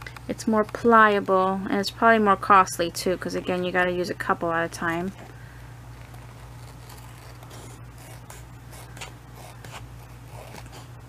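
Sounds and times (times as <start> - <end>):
scissors snipping laminated paper: 5.9 - 10.9.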